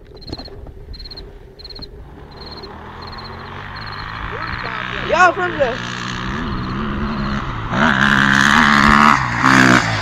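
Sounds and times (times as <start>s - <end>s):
distant motorcycle engine: 0.0s - 10.0s
insect chirping in trills: 0.1s - 4.9s, 6.3s - 7.4s.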